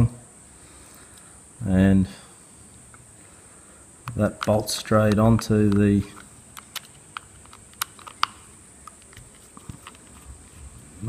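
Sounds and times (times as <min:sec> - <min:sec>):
plastic parts handled: 0:04.0 - 0:10.4.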